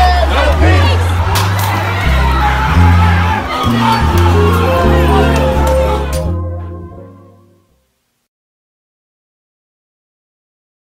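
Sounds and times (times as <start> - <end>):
protest crowd shouting: 0.0 - 7.1
music with deep bass line: 0.5 - 7.6.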